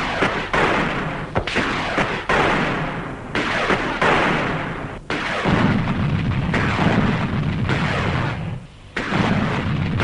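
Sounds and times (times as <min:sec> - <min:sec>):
gunfire and blasts: 0:00.0 - 0:10.0.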